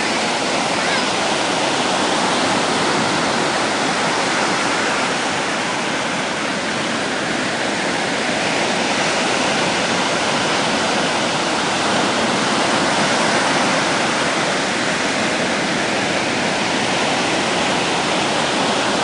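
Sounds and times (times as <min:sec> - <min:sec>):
ocean surf breaking on beach: 0:00.0 - 0:19.0.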